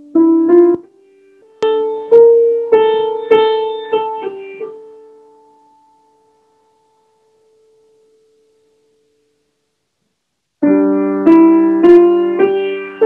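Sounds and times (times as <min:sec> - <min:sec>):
grand piano notes ringing: 0:00.0 - 0:08.0.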